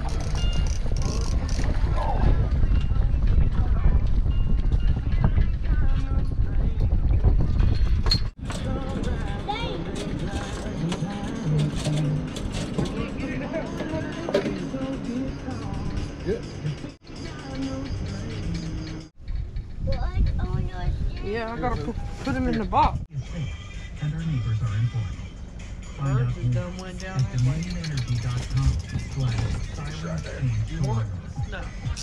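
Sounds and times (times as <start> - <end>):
wind rumbling on microphone: 0.0 - 23.5
indistinct voices: 8.4 - 19.1, 19.8 - 32.0
music: 8.4 - 19.1, 22.8 - 32.0.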